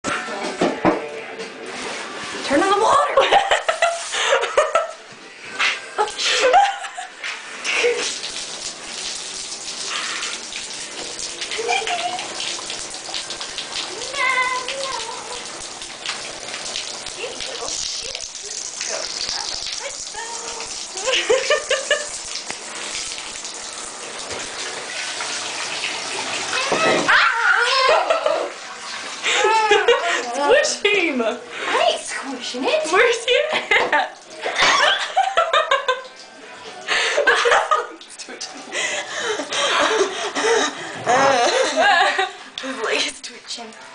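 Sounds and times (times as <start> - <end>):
water running into bathtub: 0.1 - 43.9.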